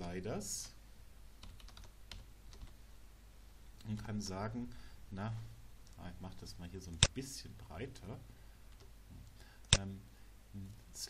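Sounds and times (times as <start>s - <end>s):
computer keyboard keystrokes: 1.4s - 2.7s.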